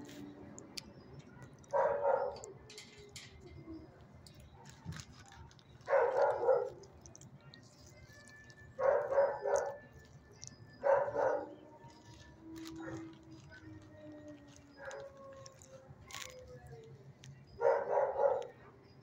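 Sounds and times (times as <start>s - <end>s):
dog barking: 1.3s - 2.6s, 5.8s - 6.9s, 8.8s - 10.0s, 10.8s - 13.5s, 14.8s - 16.3s, 17.6s - 18.8s.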